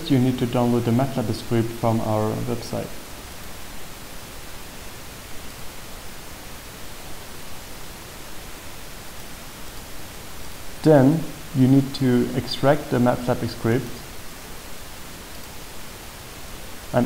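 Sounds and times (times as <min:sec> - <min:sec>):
man speaking: 0:00.0 - 0:03.0, 0:10.8 - 0:14.0
recording background hiss: 0:00.0 - 0:17.0.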